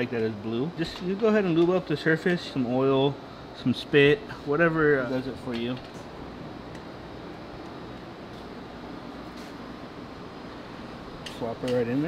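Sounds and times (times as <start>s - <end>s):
workshop hum and hiss: 0.0s - 12.0s.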